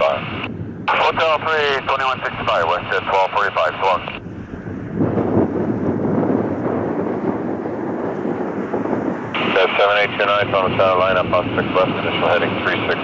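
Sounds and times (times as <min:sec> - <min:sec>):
jet engines rumbling: 0:00.0 - 0:13.0.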